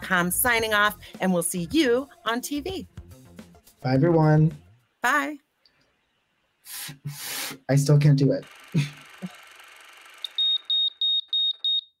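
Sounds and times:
electronic alarm beeping: 10.2 - 12.0.

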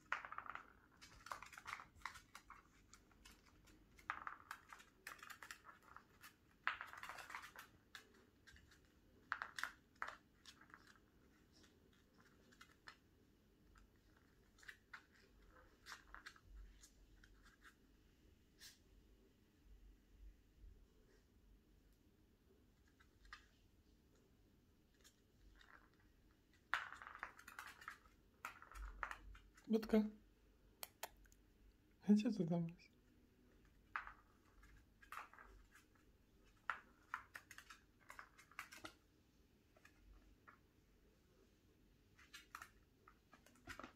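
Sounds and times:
dog claws skittering on floor: 0.0 - 17.8, 24.9 - 29.7, 33.4 - 39.1.

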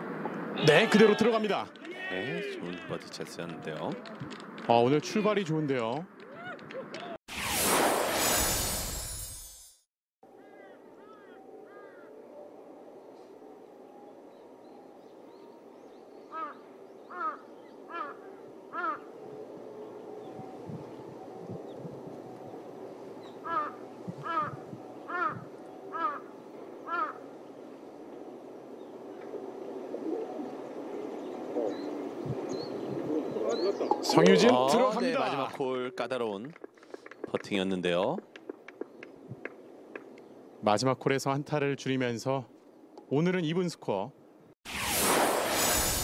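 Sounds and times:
outdoor background hum: 10.3 - 46.0
crow cawing: 16.3 - 19.1, 23.4 - 27.3.

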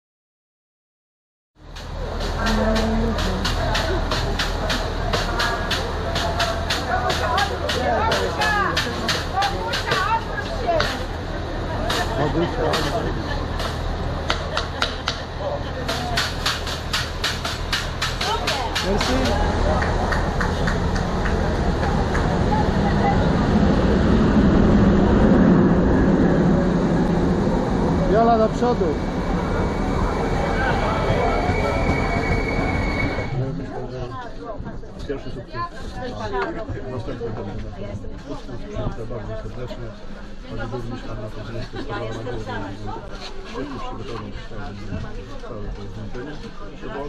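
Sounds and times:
standing train humming: 1.6 - 38.3
train rumbling along platform: 1.6 - 47.0
people talking: 1.9 - 16.4, 18.2 - 47.0.

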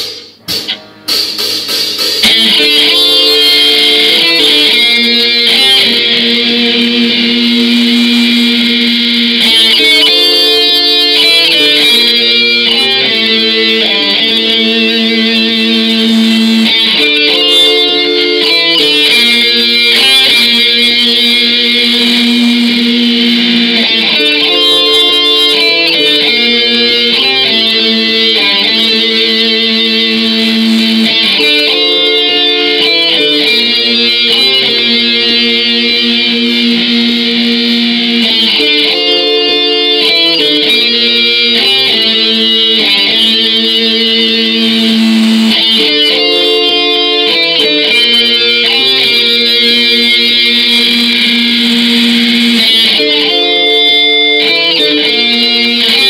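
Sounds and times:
distorted electric guitars: 0.0 - 56.0.

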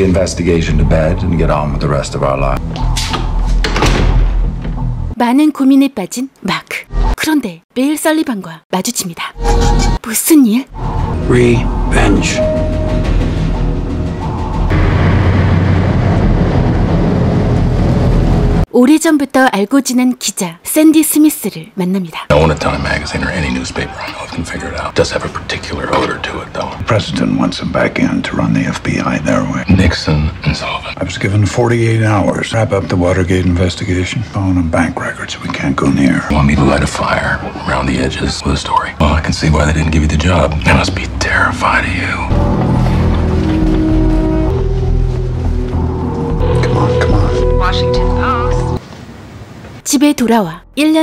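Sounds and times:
man talking: 0.0 - 2.6, 11.2 - 12.5, 22.3 - 42.3
steady low hum: 10.8 - 18.7.

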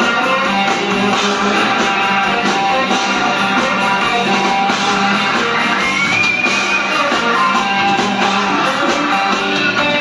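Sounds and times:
live rock band with electric guitars: 0.0 - 10.0.

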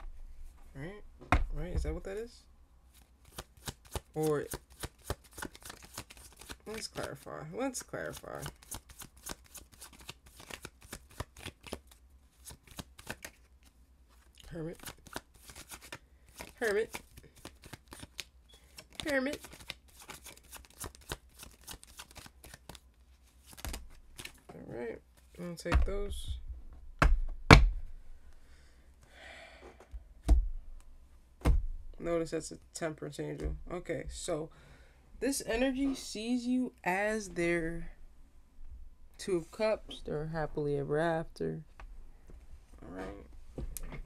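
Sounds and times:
cards being shuffled: 2.9 - 7.2, 7.8 - 24.5.

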